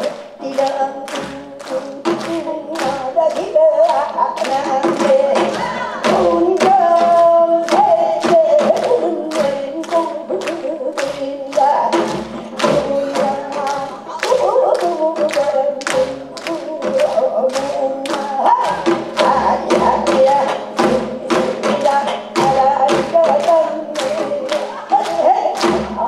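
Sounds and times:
women singing: 0.0s - 26.0s.

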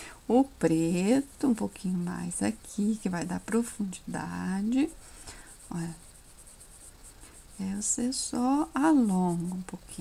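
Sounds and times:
paintbrush scratching on cloth: 0.8s - 10.0s.

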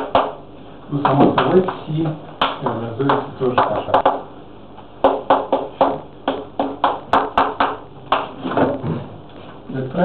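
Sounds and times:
chalk tapping on blackboard: 2.5s - 4.2s, 5.0s - 8.3s.

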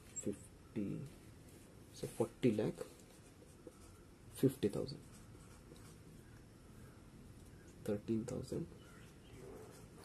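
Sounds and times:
marker pen scratching on whiteboard: 2.8s - 6.4s, 9.2s - 10.0s.

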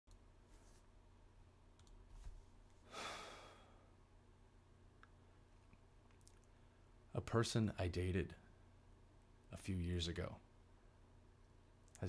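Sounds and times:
low steady hum: 0.1s - 12.0s
man sighing: 2.9s - 3.9s.

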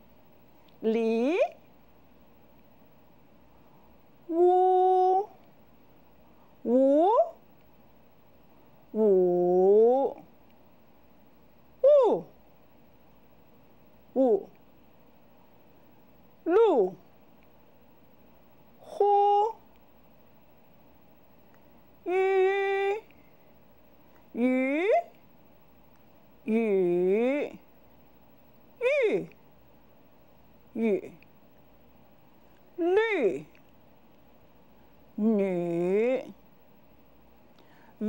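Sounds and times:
person holding a high vowel: 4.3s - 5.4s
person pronouncing vowel syllables: 4.3s - 5.4s, 9.0s - 10.2s, 22.1s - 23.1s, 30.8s - 31.2s.

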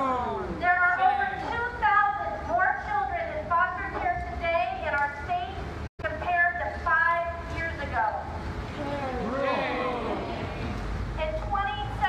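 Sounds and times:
woman speaking: 11.2s - 12.0s.

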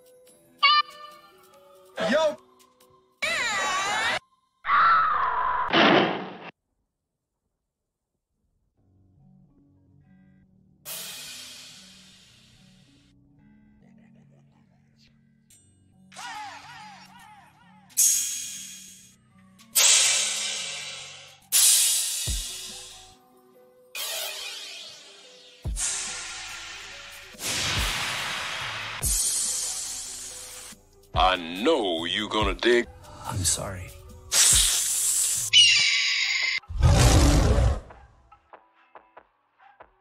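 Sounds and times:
crash cymbal: 10.9s - 12.8s, 18.0s - 19.2s, 19.8s - 23.2s, 25.7s - 30.8s
high hiss: 25.8s - 30.8s, 34.3s - 35.6s.

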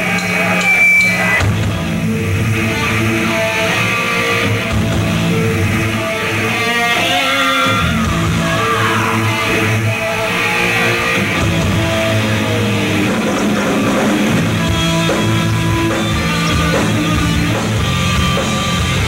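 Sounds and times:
bass guitar riffing: 0.0s - 19.0s
distorted electric guitars: 0.0s - 19.0s
drum kit: 0.0s - 19.0s.

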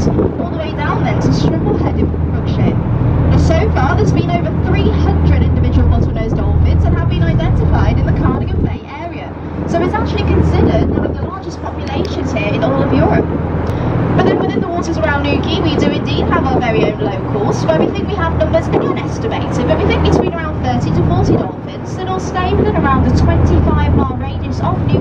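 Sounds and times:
person talking: 0.0s - 13.3s, 14.2s - 25.0s
boat engine humming: 0.0s - 25.0s.

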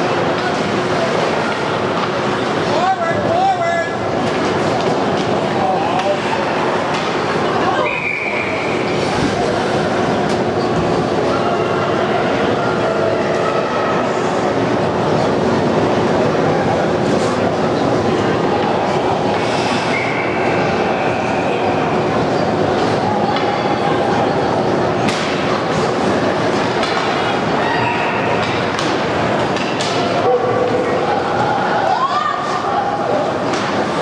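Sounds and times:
crowd murmur: 0.0s - 34.0s
short high whistle: 7.8s - 8.7s, 19.7s - 20.4s.

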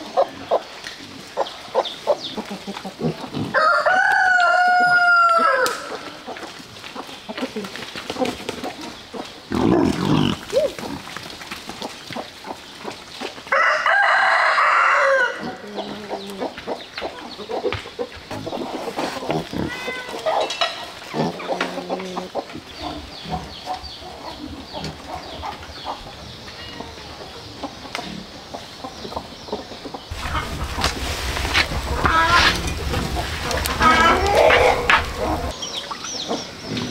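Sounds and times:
chickens clucking: 0.0s - 36.9s
pigs grunting: 2.4s - 3.6s, 8.4s - 11.3s, 18.3s - 25.6s, 30.1s - 35.6s
rooster crowing: 3.6s - 6.0s, 13.5s - 15.5s, 33.8s - 35.5s.

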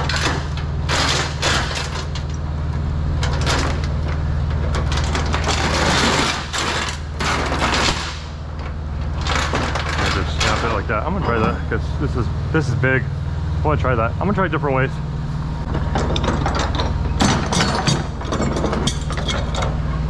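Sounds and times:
metal chain clanking on trailer deck: 0.0s - 2.5s, 3.2s - 11.9s, 15.7s - 20.0s
low hum: 0.0s - 20.0s.

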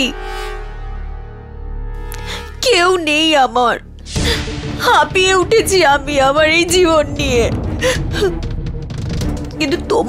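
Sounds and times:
low music drone: 0.0s - 10.0s.

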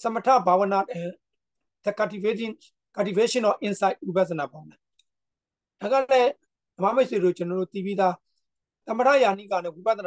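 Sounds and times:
man lecturing: 0.0s - 4.9s, 5.8s - 10.0s.

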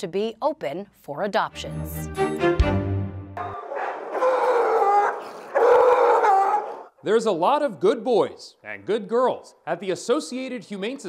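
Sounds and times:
dogs barking and howling: 3.4s - 6.9s.

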